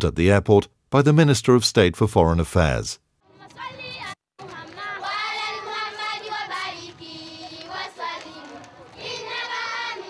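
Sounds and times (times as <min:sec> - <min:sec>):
children singing together: 0:03.4 - 0:10.0.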